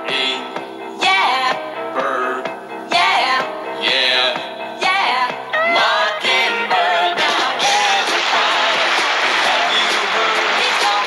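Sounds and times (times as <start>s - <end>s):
singers performing pop song: 0.0s - 11.0s
band accompaniment: 7.1s - 11.0s.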